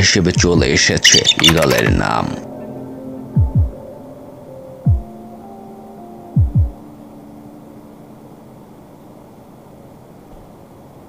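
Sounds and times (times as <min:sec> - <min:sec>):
deep bass thumps: 0:03.4 - 0:03.7.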